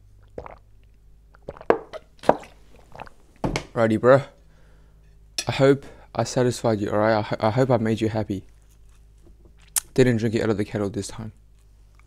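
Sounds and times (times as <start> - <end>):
person gulping water: 0.2 - 3.2.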